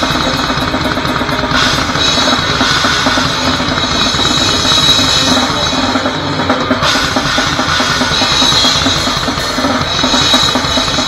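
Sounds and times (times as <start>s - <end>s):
crashing cymbals: 0.0s - 11.0s
distorted guitar: 0.0s - 11.0s
fast drumming: 0.0s - 11.0s
pounding bass drum: 0.0s - 11.0s.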